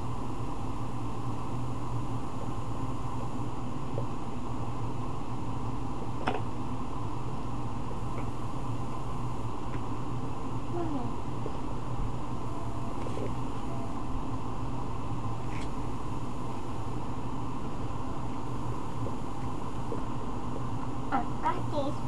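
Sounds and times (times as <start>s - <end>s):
steady mechanical hum: 0.0s - 22.0s.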